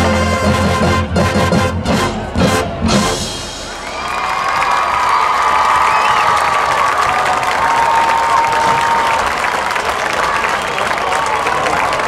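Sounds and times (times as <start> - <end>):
crowd clapping: 3.7 - 12.0.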